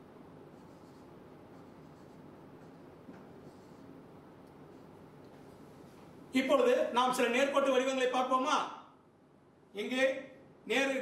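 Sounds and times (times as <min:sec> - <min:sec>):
marker pen writing on whiteboard: 0:00.4 - 0:05.7.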